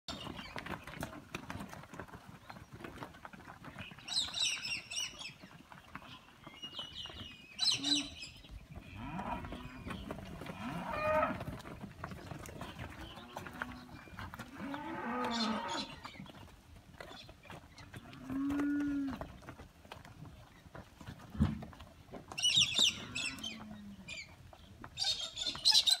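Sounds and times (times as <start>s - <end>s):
cattle mooing: 8.9s - 9.9s, 10.5s - 11.5s, 13.3s - 15.9s.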